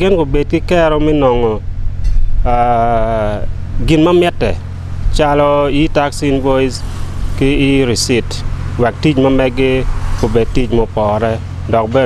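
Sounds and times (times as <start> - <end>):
man speaking into a microphone: 0.0 - 1.6, 2.5 - 6.8, 7.4 - 12.0
low hum: 0.0 - 12.0.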